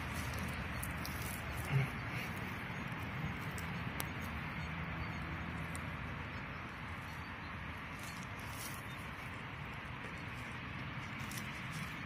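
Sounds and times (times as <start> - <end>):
hand scraping through soil: 0.0 - 4.2
low outdoor rumble: 0.0 - 12.0.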